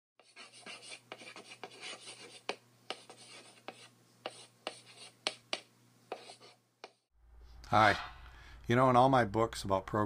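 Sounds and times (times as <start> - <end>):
chalk scratching on blackboard: 0.2 - 7.1
chalk tapping on board: 0.2 - 7.1.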